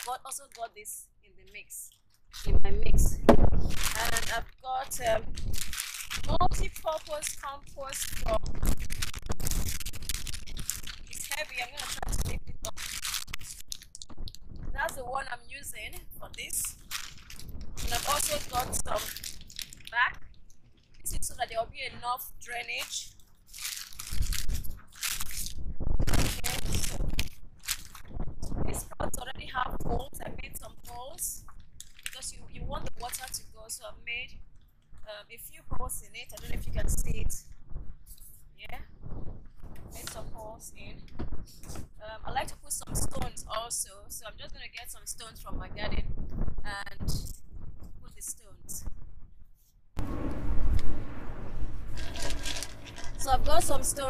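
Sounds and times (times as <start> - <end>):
rustling and crunching materials: 0.0 - 0.7, 1.4 - 33.5, 51.8 - 54.0
low steady rumble: 2.3 - 54.0
low rumble: 2.4 - 22.2, 48.8 - 54.0
stones clicking and scraping: 5.0 - 14.9, 16.6 - 21.1, 23.2 - 28.6, 31.5 - 32.2, 51.9 - 53.3.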